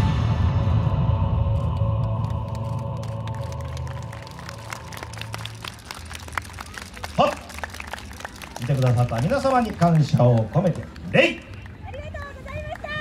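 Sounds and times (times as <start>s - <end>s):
audience clapping: 1.6s - 13.0s.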